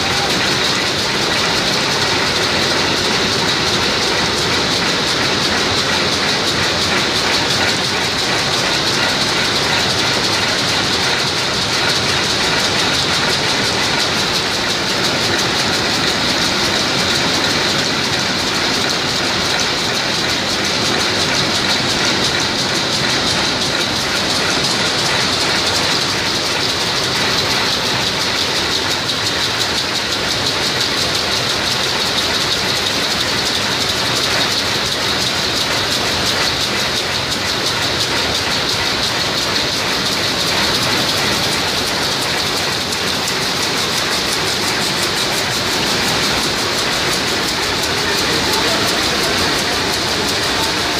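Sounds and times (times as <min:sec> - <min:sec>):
loom rapid mechanical clatter: 0:00.0 - 0:50.9.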